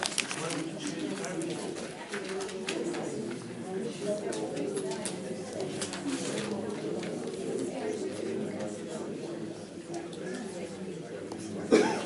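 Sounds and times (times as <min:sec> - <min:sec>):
paper slips rustling: 0:00.0 - 0:02.6
low indistinct talk: 0:00.0 - 0:12.0.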